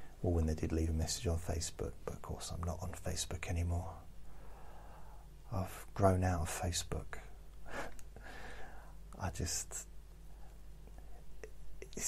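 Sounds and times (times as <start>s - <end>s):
low steady hum: 0.0s - 12.0s
faint breath: 4.2s - 5.4s, 7.6s - 9.0s.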